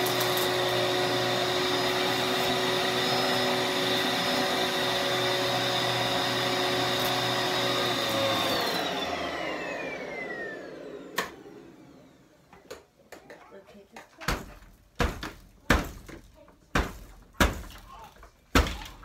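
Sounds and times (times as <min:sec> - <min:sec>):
vacuum cleaner running: 0:00.0 - 0:12.5.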